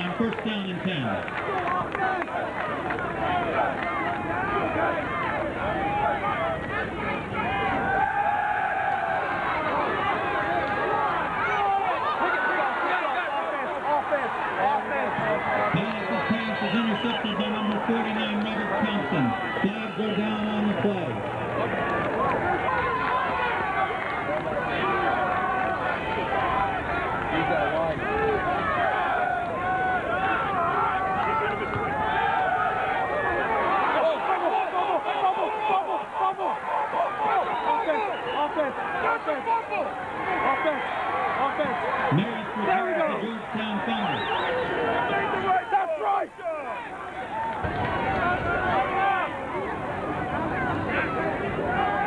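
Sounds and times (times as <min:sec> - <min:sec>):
man's voice: 0:00.0 - 0:01.2, 0:15.2 - 0:21.2, 0:42.1 - 0:44.2
crowd chattering: 0:00.0 - 0:52.0.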